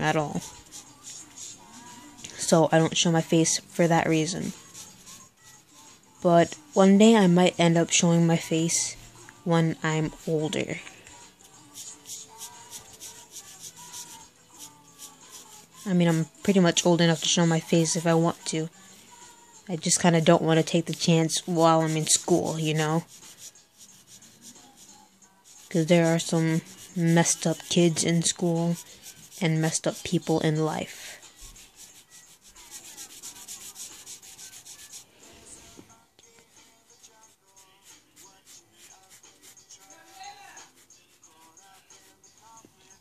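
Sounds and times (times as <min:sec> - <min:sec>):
marker scratching on paper: 0:00.0 - 0:05.7, 0:11.6 - 0:18.4, 0:19.8 - 0:35.1, 0:37.5 - 0:42.2.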